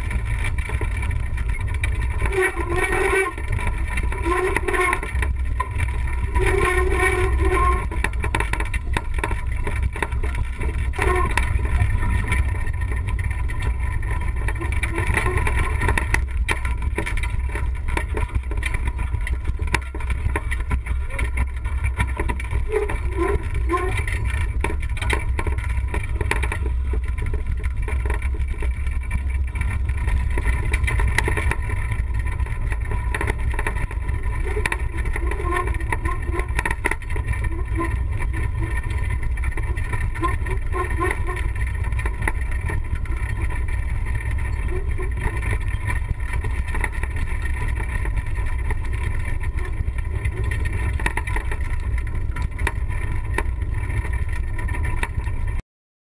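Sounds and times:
wheelchair rattling over gravel: 0.0 - 55.6.

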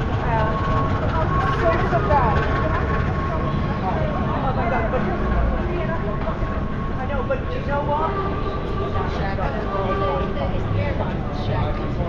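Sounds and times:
low rumble of traffic: 0.0 - 12.0
passers-by chatting: 0.0 - 12.0.

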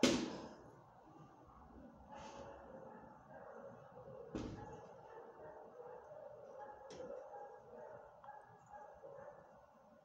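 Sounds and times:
faint dog barking: 1.9 - 9.8.

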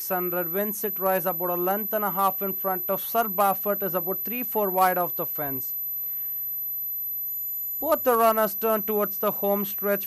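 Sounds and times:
background hiss: 0.0 - 10.0
faint hum: 0.0 - 10.0.

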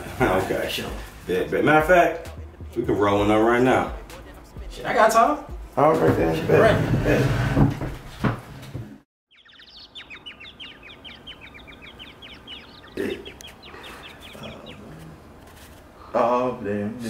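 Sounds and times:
small birds chirping: 9.2 - 16.4.

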